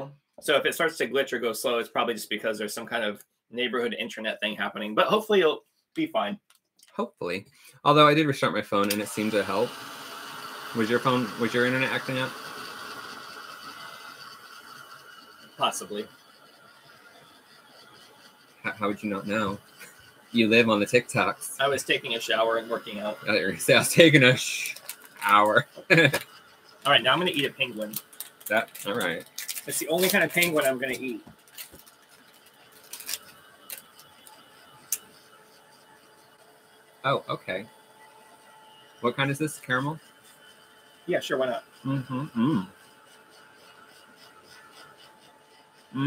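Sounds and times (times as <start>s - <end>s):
hair dryer blowing: 8.8s - 14.7s.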